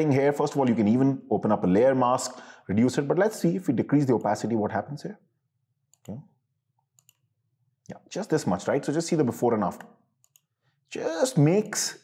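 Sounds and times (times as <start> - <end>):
computer mouse clicking: 6.9 - 7.3, 10.2 - 10.5.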